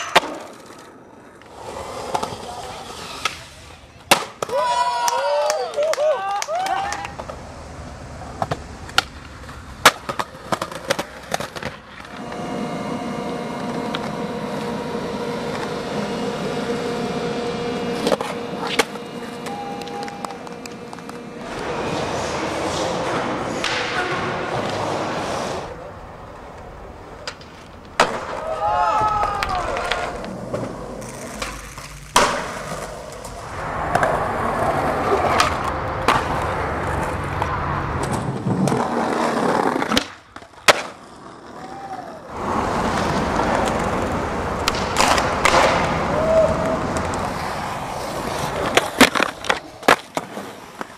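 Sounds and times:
skateboard popping and landing: 0.0s - 4.6s, 6.8s - 12.5s, 26.4s - 50.9s
skateboard wheels rolling on concrete: 0.0s - 50.9s
voices calling out: 12.1s - 31.6s.

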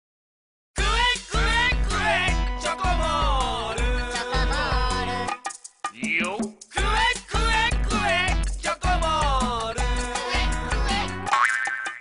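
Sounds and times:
commercial jingle music: 0.8s - 11.4s.

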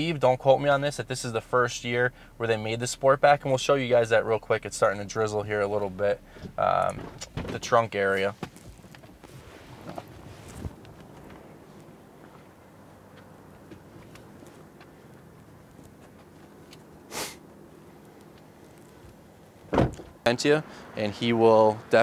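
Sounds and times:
car door clicks and rustles: 6.3s - 20.2s
short sharp swish: 17.1s - 17.4s
thump: 19.7s - 20.1s.

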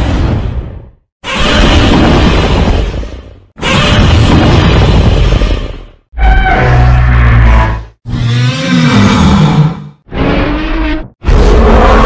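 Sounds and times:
monster roars: 6.6s - 12.0s.

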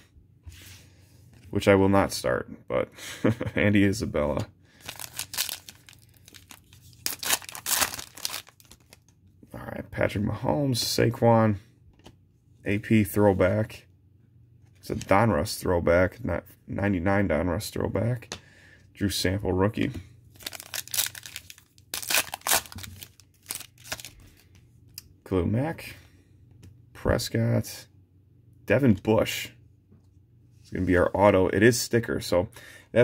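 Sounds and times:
foil wrapper tearing and crinkling: 4.8s - 9.1s, 20.4s - 24.2s.

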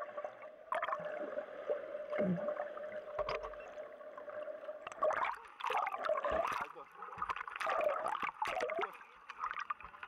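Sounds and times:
underwater crackles: 0.0s - 10.0s.

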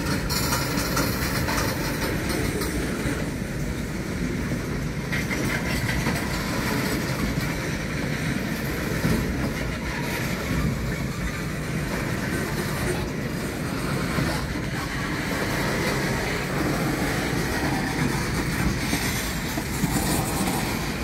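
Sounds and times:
freight train wheels rumbling on rails: 0.0s - 21.0s.

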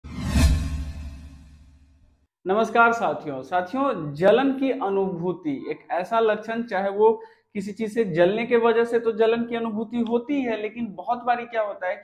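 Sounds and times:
whoosh sound effect: 0.0s - 1.7s.

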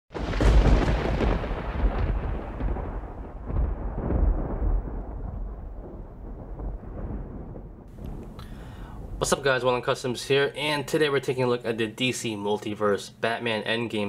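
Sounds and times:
deep rolling rumble: 0.2s - 10.2s.

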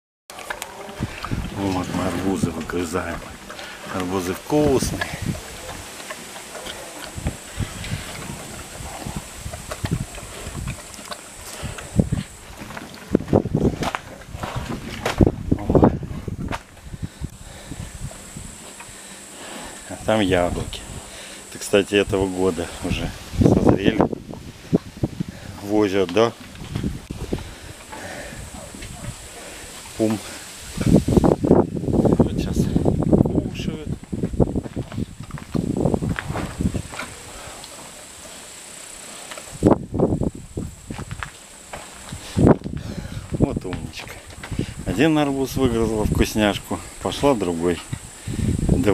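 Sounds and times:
bear chewing watermelon: 0.3s - 45.9s.

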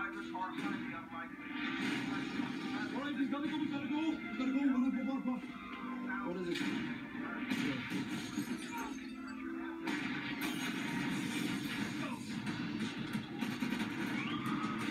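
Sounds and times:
music from tv speaker: 0.0s - 14.9s
crashing noise: 1.6s - 2.7s, 9.9s - 14.9s.

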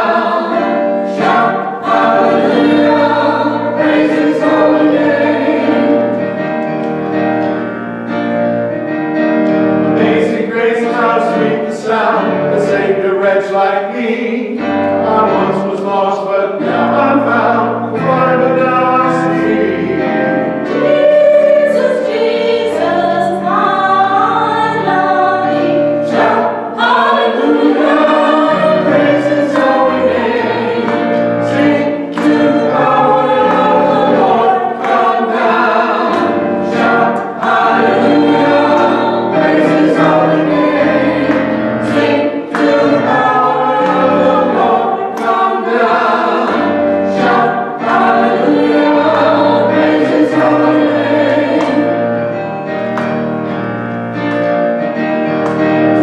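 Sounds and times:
church choir singing: 0.0s - 56.0s.

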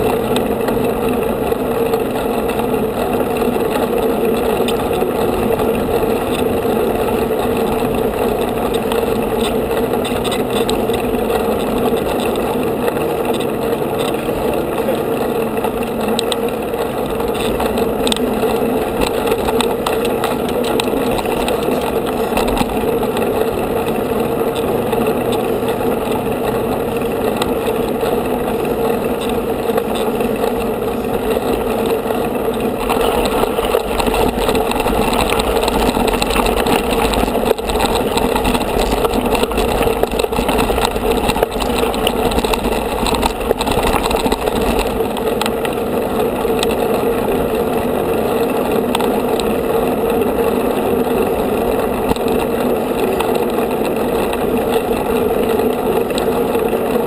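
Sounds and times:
bike tyres rolling on road: 0.0s - 57.0s
constant low hum: 0.0s - 57.0s
wind noise: 0.0s - 57.0s.

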